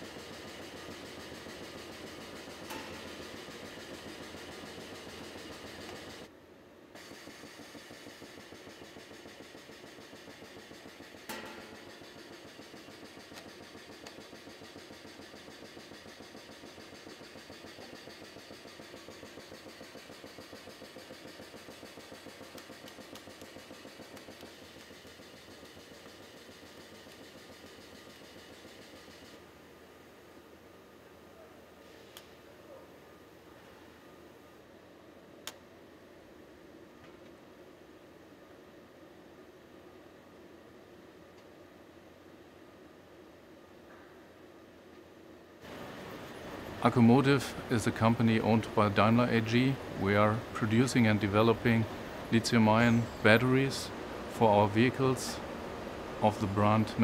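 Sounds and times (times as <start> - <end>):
machinery hum: 0.0 - 57.0.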